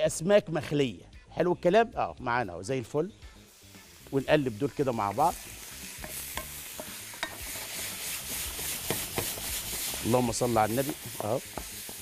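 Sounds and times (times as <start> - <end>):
seafood sizzling in a pan: 3.0 - 12.0.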